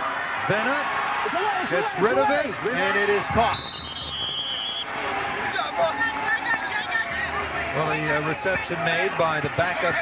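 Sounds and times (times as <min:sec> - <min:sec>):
stadium crowd noise: 0:00.0 - 0:10.0
referee's whistle: 0:03.1 - 0:04.9.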